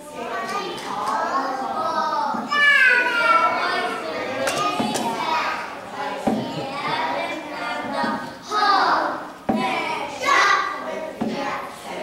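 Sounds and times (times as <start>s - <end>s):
young children's voices: 0.0s - 12.0s
sharp knocks: 6.2s - 6.6s, 9.5s - 9.8s.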